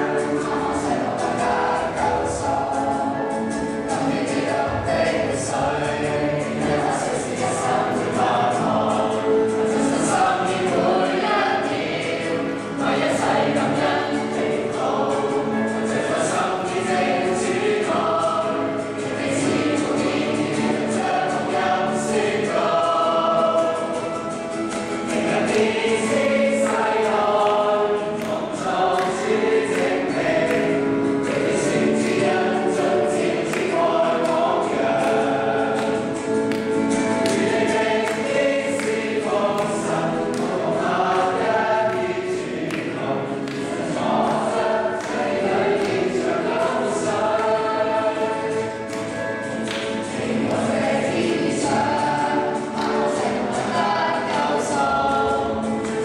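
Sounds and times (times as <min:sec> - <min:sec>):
group singing worship song: 0:00.0 - 0:56.0.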